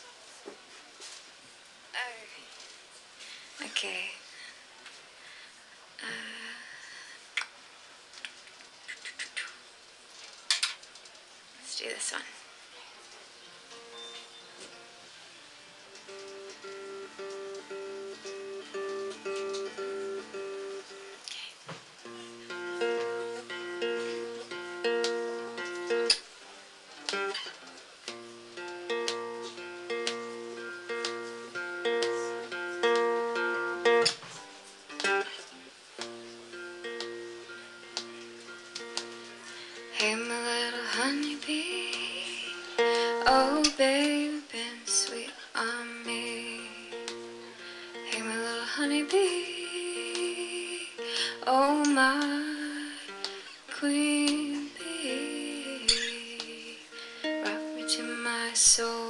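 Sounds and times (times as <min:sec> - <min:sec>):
fingerpicked acoustic guitar: 0:13.6 - 0:21.2, 0:22.0 - 0:59.0
person singing sliding notes: 0:39.1 - 0:59.0.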